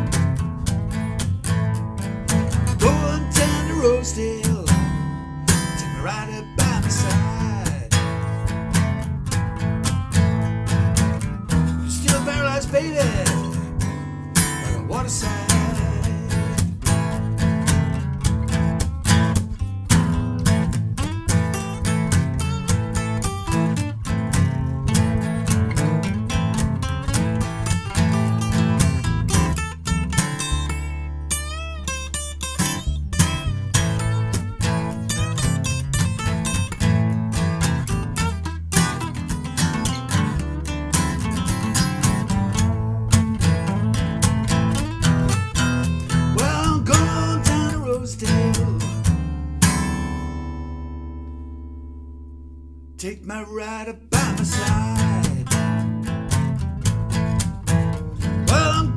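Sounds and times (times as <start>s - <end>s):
acoustic guitar blues picking: 0.0s - 58.9s.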